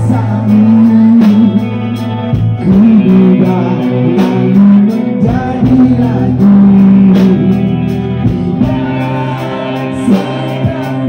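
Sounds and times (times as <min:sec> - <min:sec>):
bass guitar: 0:00.0 - 0:11.0
electric guitar: 0:00.0 - 0:11.0
person singing: 0:00.0 - 0:11.0.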